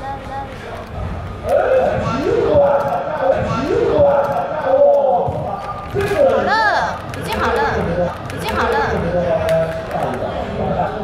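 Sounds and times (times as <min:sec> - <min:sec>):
woman talking: 0:06.5 - 0:09.1.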